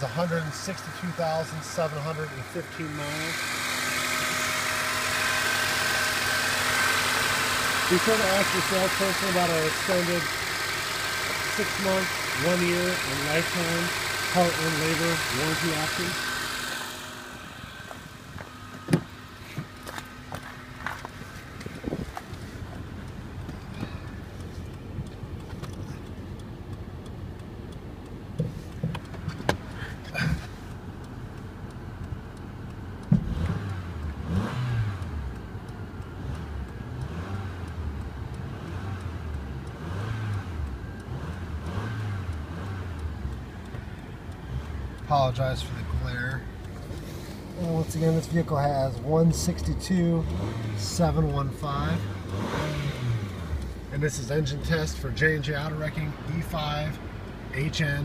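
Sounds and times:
car engine idling: 0.0s - 58.0s
footsteps: 17.7s - 22.8s.

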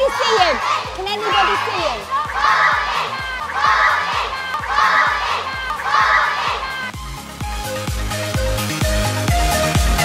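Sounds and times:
children chanting: 0.0s - 6.9s
music with steady beat: 0.8s - 10.0s.

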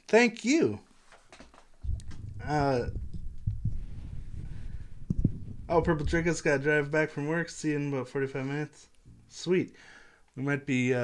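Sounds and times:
soft thumps on microphone: 1.8s - 6.7s
microphone handling rumble: 1.8s - 7.8s.

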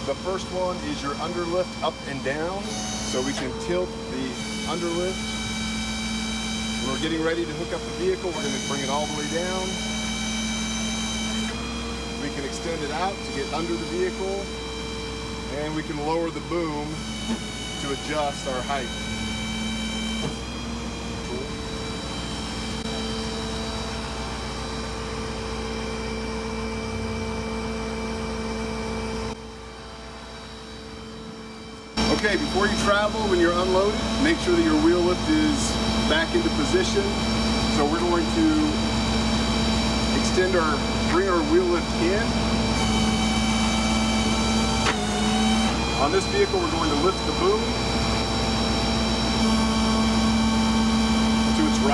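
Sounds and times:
hydraulic system whining: 0.0s - 51.9s
truck engine running: 3.2s - 51.9s.

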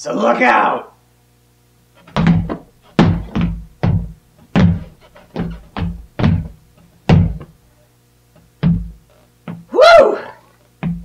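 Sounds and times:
stomping dance steps on floor: 2.0s - 7.6s, 8.6s - 9.8s, 10.8s - 11.0s.

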